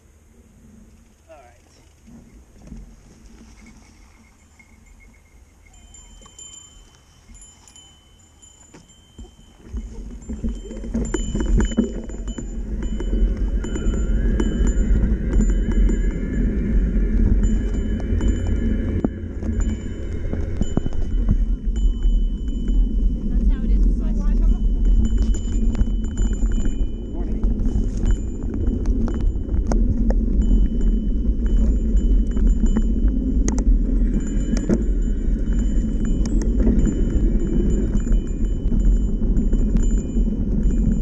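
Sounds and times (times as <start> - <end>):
bike rattling and clicking: 1.9 - 41.0
wind on microphone: 2.0 - 41.0
bike tyres rumbling on dirt: 8.7 - 41.0.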